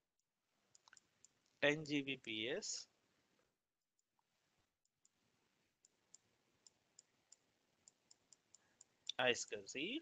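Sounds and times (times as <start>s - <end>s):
faint small clicks: 0.7s - 1.6s.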